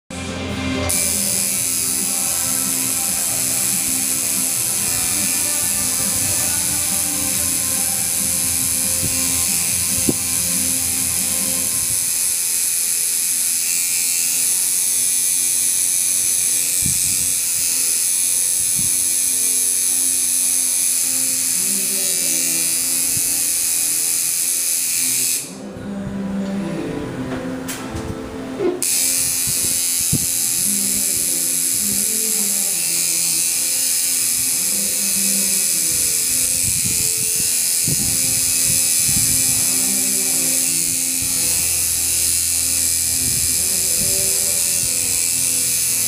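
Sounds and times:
background music: 0.1 - 46.0
tattoo machine buzzing: 0.2 - 25.6, 28.6 - 46.0.

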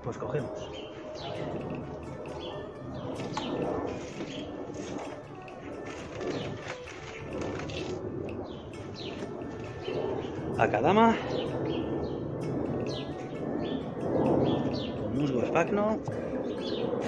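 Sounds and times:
birds chirping: 0.0 - 17.0
dove cooing: 0.4 - 10.5.

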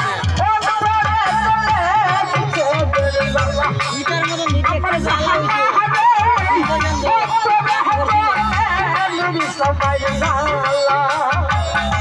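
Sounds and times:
steady drum beat: 0.0 - 12.0
wavering melody with vibrato: 0.0 - 12.0.

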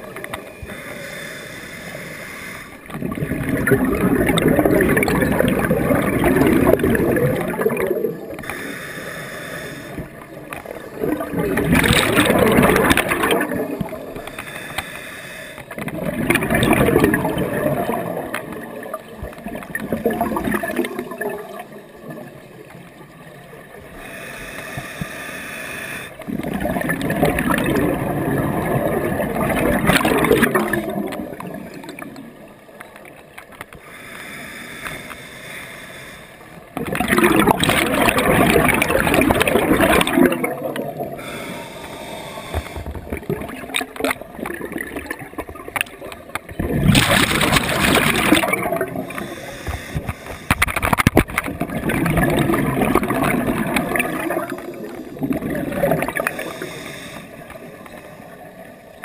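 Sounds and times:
diver breathing through regulator: 0.5 - 2.9, 8.4 - 10.2, 14.2 - 15.7, 23.9 - 26.2, 33.7 - 36.6, 41.0 - 43.1, 47.1 - 50.9, 56.1 - 58.4
underwater bubbling exhalations: 2.8 - 8.7, 9.8 - 14.4, 15.7 - 24.1, 26.2 - 32.6, 36.6 - 58.7.

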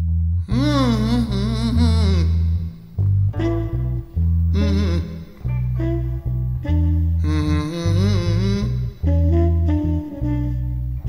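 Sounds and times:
slow blues with bass and guitar: 0.0 - 11.0
singer humming: 0.4 - 10.8.

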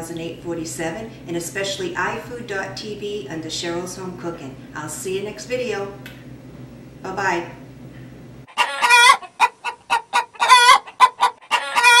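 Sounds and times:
chicken clucking: 8.5 - 12.0
chicken drawn-out calls: 8.5 - 12.0.

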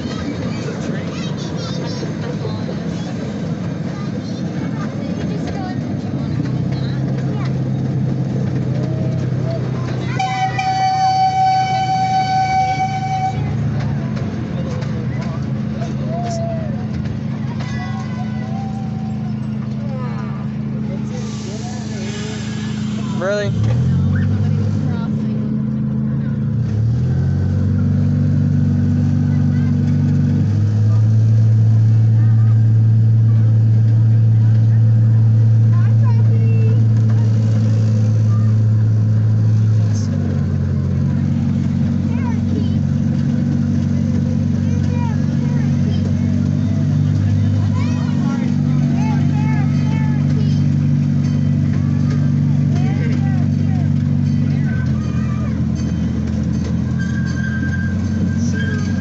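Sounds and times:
miniature train droning: 0.0 - 59.0.

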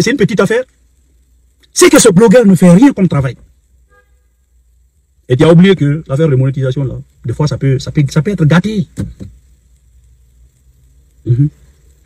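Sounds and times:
man speaking: 1.7 - 3.4, 11.3 - 11.6.

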